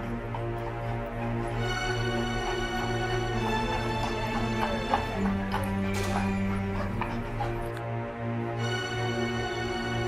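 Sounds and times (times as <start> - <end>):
horse hooves clip-clopping on brick: 0.0 - 7.8
music with long held notes: 0.0 - 10.0.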